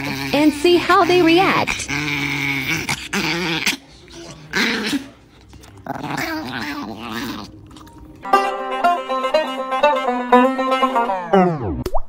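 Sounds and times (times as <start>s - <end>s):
small dog growling: 0.0s - 8.2s.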